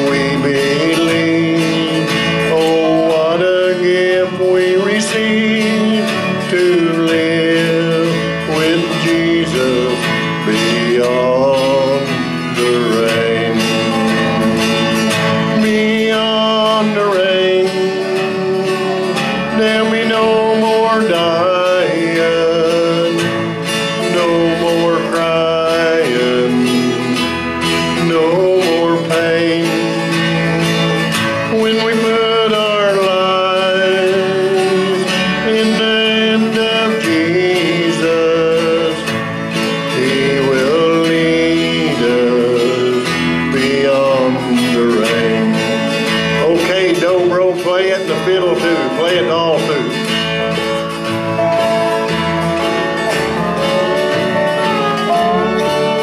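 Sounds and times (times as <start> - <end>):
sliding melody with vibrato: 0.0 - 56.0
strummed acoustic guitar: 0.0 - 56.0.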